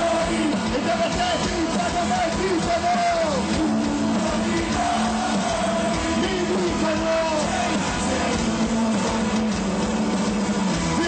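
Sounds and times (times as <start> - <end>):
drums: 0.0 - 11.0
electric guitar: 0.0 - 11.0.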